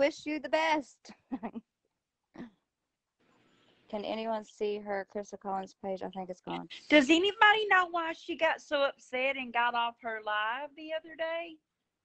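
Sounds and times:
woman laughing: 0:01.2 - 0:01.6.

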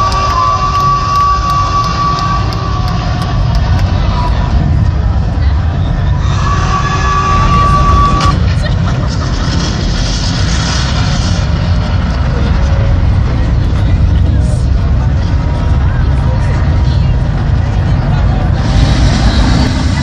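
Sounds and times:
crowd chatter: 0:00.0 - 0:20.0
deep rumbling sound system: 0:00.0 - 0:20.0.

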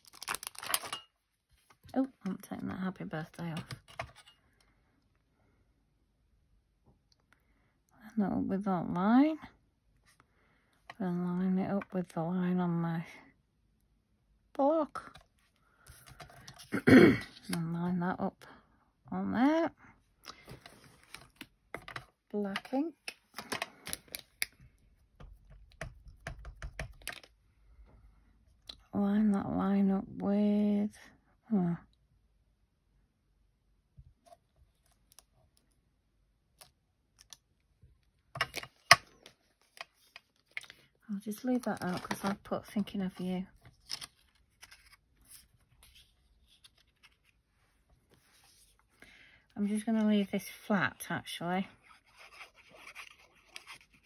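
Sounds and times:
paper rustling: 0:43.1 - 0:48.9.

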